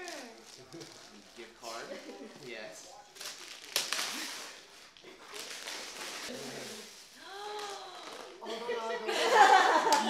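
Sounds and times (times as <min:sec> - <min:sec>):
gift wrap tearing and rustling: 0:00.0 - 0:08.4
loud paper rip: 0:03.2 - 0:06.9.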